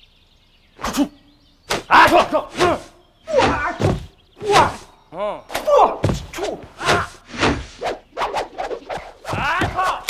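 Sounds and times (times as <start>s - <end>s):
fight swishes and hits: 1.7s - 4.9s, 5.6s - 10.0s.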